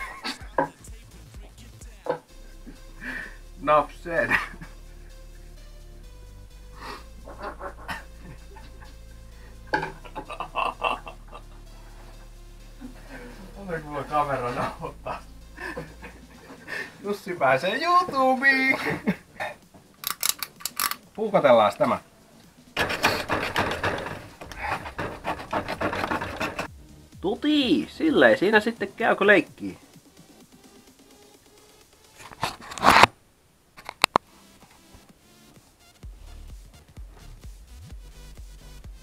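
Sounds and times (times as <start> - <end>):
steady low hum: 0.0 - 17.1
breathy vocal bursts: 0.8 - 3.6, 6.6 - 8.2
knife tearing speaker cone: 32.3 - 33.1.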